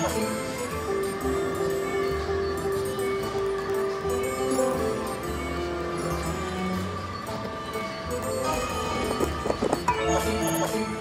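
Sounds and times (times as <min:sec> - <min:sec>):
slot machine music: 0:00.0 - 0:11.0.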